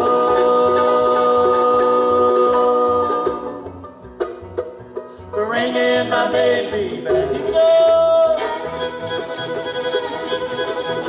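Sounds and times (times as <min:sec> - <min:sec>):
picked string notes: 0:00.0 - 0:11.0.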